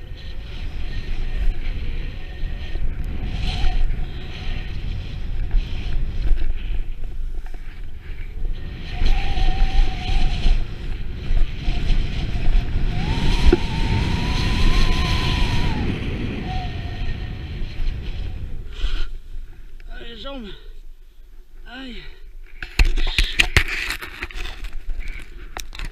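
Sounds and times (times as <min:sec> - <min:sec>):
snowboard carving over snow: 0:00.0 - 0:19.3
wind buffeting microphone: 0:00.0 - 0:20.3
low rushing rumble: 0:10.5 - 0:19.8.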